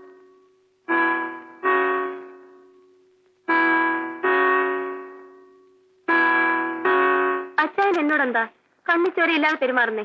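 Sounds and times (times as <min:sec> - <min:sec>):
keyboard chord: 0:00.0 - 0:07.6.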